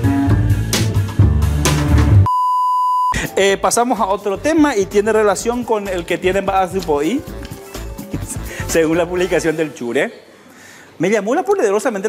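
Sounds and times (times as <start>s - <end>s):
jingle music with bass line: 0.0s - 2.3s, 3.2s - 9.7s
steady test-tone beep: 2.3s - 3.2s.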